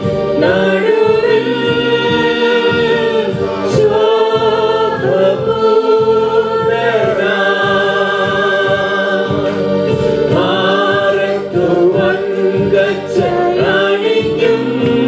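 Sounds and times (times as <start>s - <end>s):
people singing worship song: 0.0s - 15.0s.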